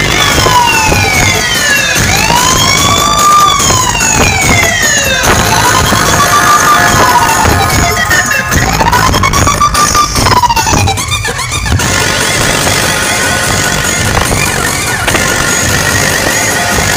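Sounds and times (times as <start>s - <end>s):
siren-like synth tone: 0.0s - 11.8s
electronic dance music: 0.0s - 16.9s.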